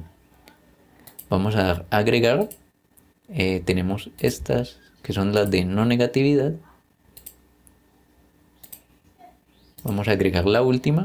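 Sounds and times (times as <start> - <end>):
computer mouse clicks: 0.5 - 1.3, 7.1 - 7.8, 8.6 - 8.9
man speaking: 1.3 - 2.6, 3.3 - 6.6, 9.8 - 11.0.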